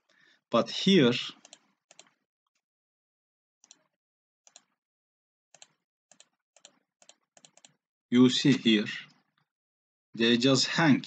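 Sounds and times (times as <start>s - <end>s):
computer mouse clicks: 1.4s - 2.2s, 4.5s - 4.7s, 5.6s - 7.8s.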